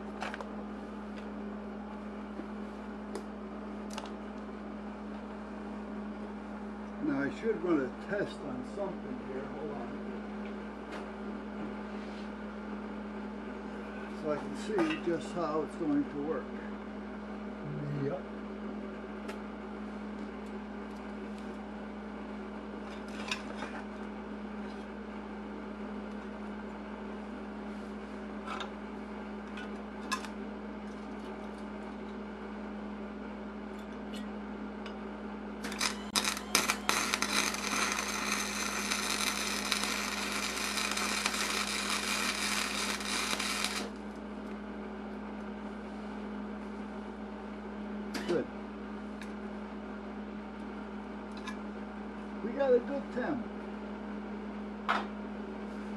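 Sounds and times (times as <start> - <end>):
low hum: 31.5 - 44.6
welder arc crackling: 35.6 - 44.2.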